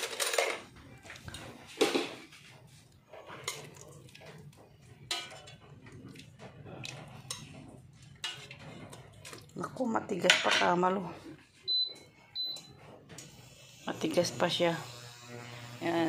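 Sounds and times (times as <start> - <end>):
metal cookware clinking and clattering: 0.0 - 11.1.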